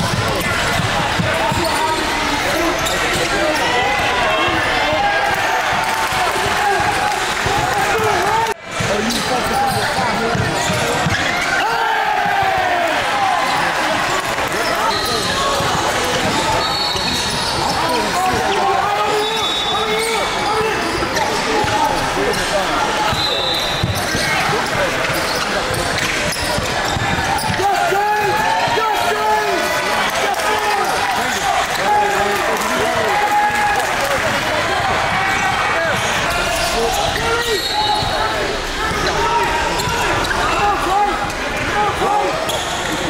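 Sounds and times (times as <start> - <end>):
sneakers squeaking: 0.1 - 3.8, 8.8 - 11.6, 13.4 - 27.6, 34.2 - 41.4, 42.3 - 43.0.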